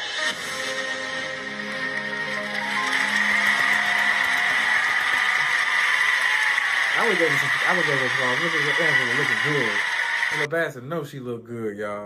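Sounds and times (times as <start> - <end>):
audience applauding: 1.4 - 10.5.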